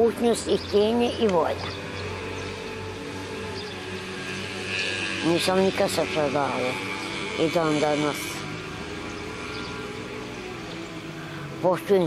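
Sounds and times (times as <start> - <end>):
low engine hum: 0.0 - 12.0
outdoor background noise: 0.0 - 12.0.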